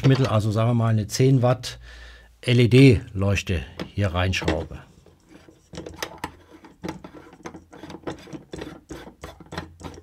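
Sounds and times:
light bulb base scraping and clicking: 3.8 - 10.0.

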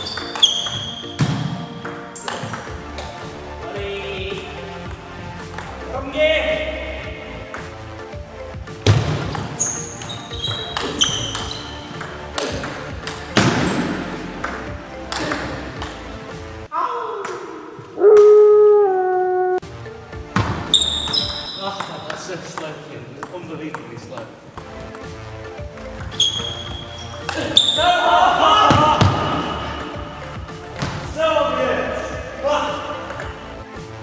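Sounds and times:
ping pong ball on bats and table: 0.0 - 5.9, 7.4 - 7.8, 8.8 - 16.1, 17.2 - 18.4, 20.4 - 25.2, 25.8 - 27.9, 28.6 - 31.1, 32.9 - 33.6
voice-like tone falling in pitch: 18.0 - 19.6.

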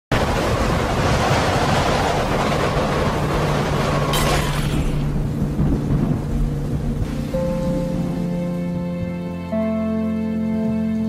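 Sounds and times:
rushing wind-like noise: 0.1 - 9.5
deep rumble: 0.1 - 10.0.

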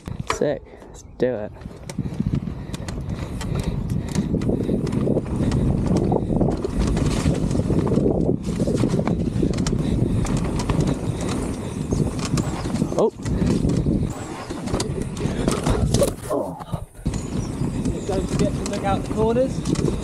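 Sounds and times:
bike riding rushing noise: 0.0 - 20.0
bike rattling and knocking: 1.5 - 20.0.

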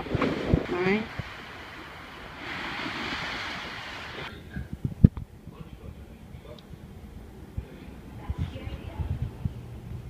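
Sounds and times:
small waves washing on beach: 0.0 - 4.3.

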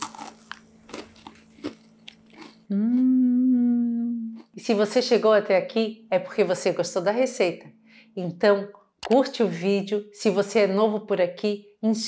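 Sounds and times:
cracker crunching while chewed: 0.0 - 2.7.

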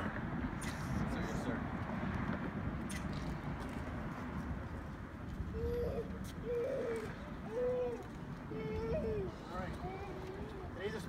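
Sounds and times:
dove cooing: 5.6 - 8.1.

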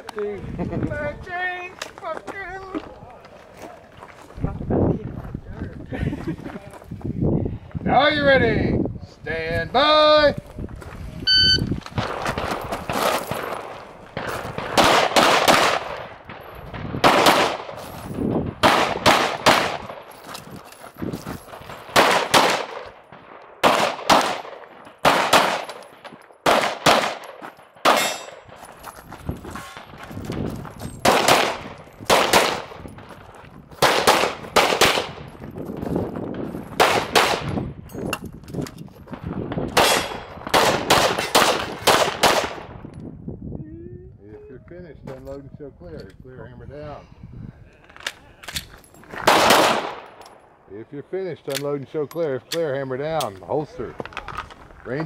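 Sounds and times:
shot timer beep: 11.2 - 11.7
handgun shots: 23.6 - 28.4, 39.7 - 42.6.

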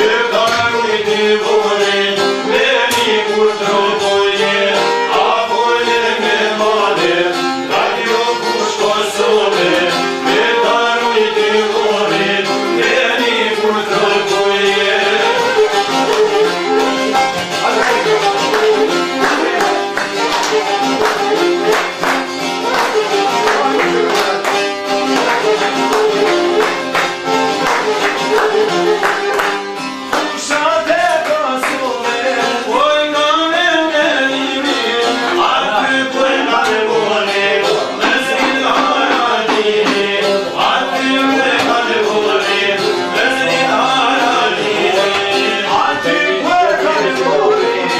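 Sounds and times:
man singing: 0.0 - 20.6, 22.7 - 26.7, 30.2 - 47.9
plucked lutes: 0.0 - 47.9
violin: 0.0 - 47.9
hand clapping: 2.9 - 3.3, 15.0 - 32.6, 37.6 - 42.5.

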